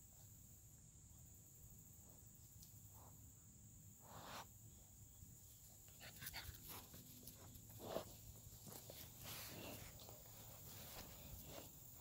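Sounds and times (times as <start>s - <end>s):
puppies moving in grass: 5.8s - 12.0s.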